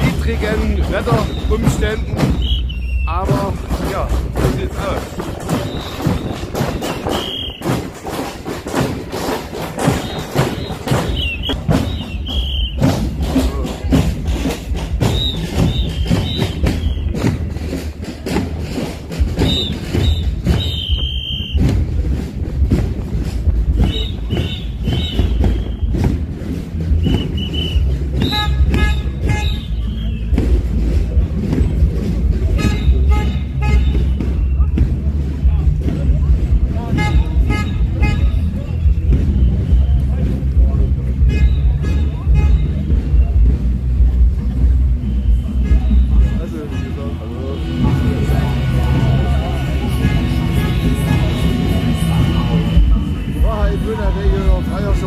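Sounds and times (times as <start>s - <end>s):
crowd voices: 0.0s - 55.0s
marching drums beating: 0.0s - 55.0s
high-pitched whistle blasts: 2.3s - 3.1s, 5.6s - 7.8s, 10.0s - 12.8s, 15.0s - 17.2s, 19.4s - 21.7s, 23.8s - 26.0s, 27.0s - 30.4s.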